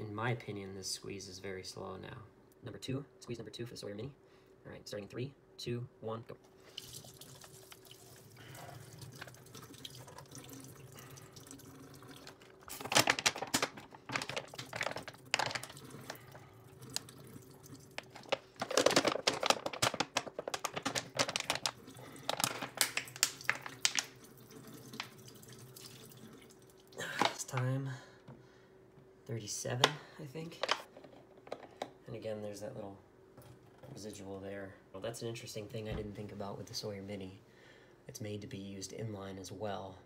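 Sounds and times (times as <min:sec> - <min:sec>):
water streaming into steel sink: 0:06.7 - 0:12.5, 0:23.7 - 0:26.6
plastic bottle crackling: 0:12.2 - 0:25.2.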